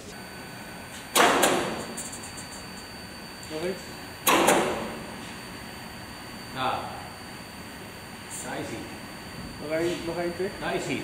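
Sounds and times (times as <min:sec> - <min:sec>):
fan humming: 0:00.0 - 0:11.0.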